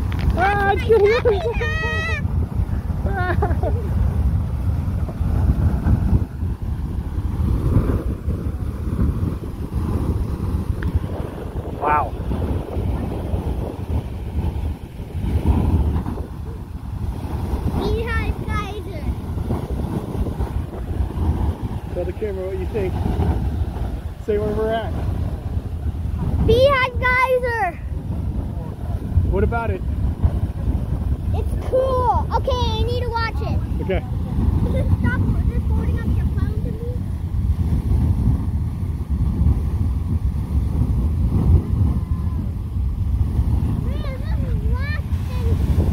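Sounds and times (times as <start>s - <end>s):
geyser water rushing: 0.0s - 45.9s
wind buffeting microphone: 0.0s - 45.9s.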